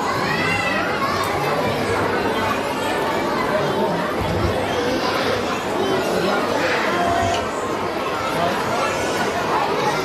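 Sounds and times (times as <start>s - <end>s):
children chattering: 0.0s - 10.0s.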